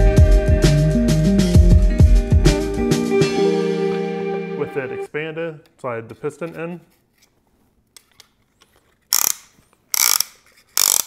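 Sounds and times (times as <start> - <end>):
ratchet wrench clicking: 9.1 - 11.0.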